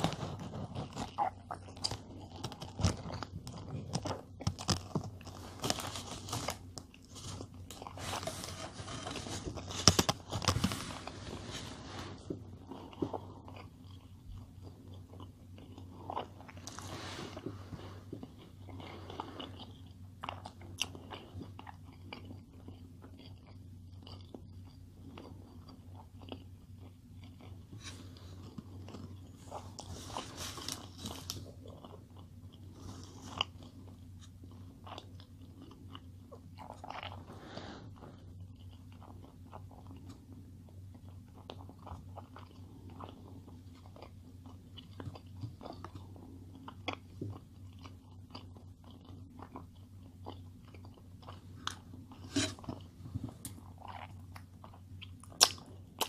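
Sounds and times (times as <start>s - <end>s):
person chewing food: 0.0s - 56.0s.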